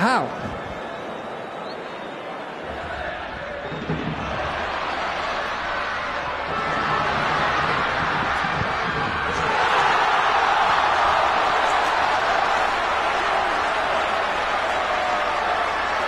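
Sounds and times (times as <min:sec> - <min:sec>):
stadium crowd noise: 0:00.0 - 0:16.0.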